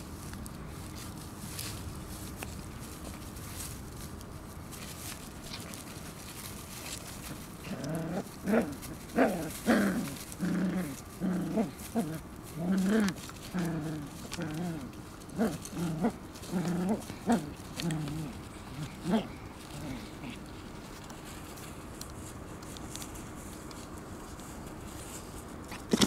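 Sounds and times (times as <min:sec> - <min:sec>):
puppies vocalizing in play: 0:05.3 - 0:21.6.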